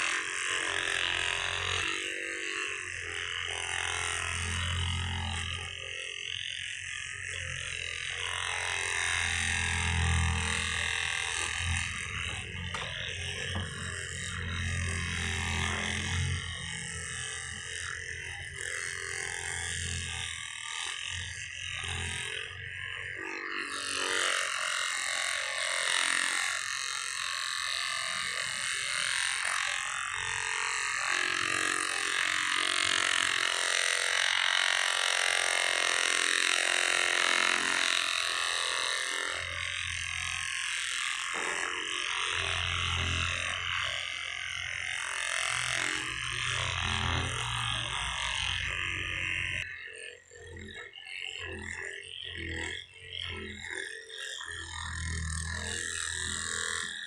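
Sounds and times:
massage gun rattling buzz: 0.0 - 57.0.

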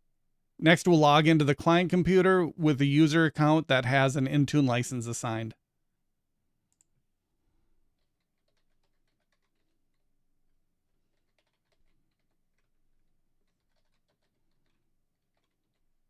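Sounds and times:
faint keyboard typing: 6.7 - 7.0, 7.8 - 16.0.

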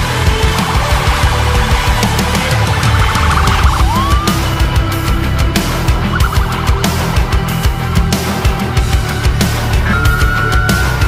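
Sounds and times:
loud heavy background music: 0.0 - 11.0
ambulance siren: 2.8 - 8.1.

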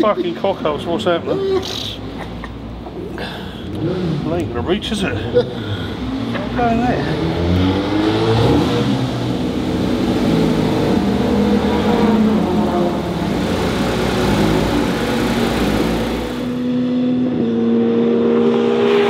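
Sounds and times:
car engine running: 2.6 - 16.7.

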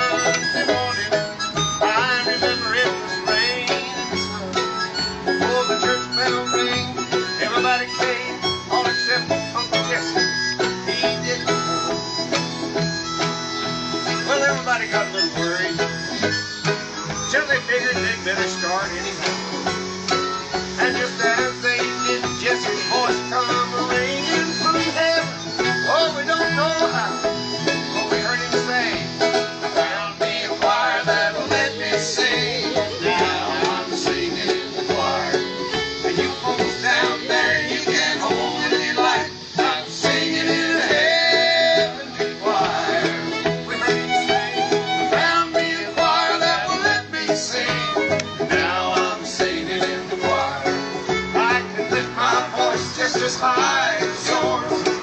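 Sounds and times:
bluegrass band playing: 0.0 - 55.0.

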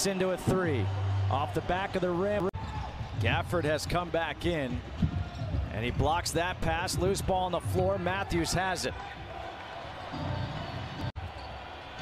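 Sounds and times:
low arena sound: 0.0 - 12.0.

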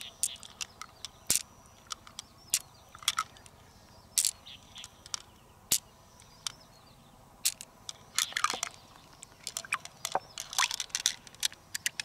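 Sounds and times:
crackling clicks of squeezed mussel: 0.0 - 3.6, 4.2 - 6.6, 7.4 - 12.0.

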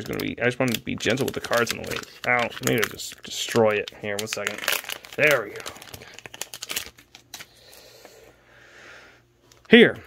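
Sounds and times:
plastic packaging crinkling: 0.0 - 7.9.

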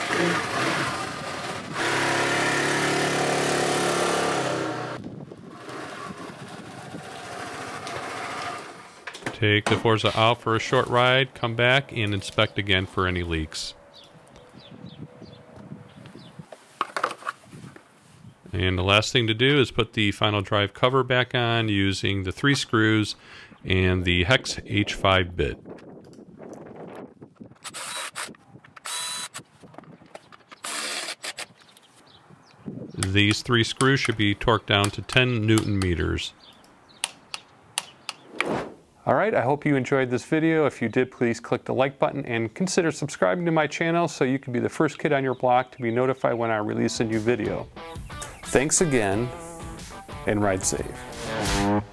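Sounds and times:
rustling and handling: 16.4 - 18.4.

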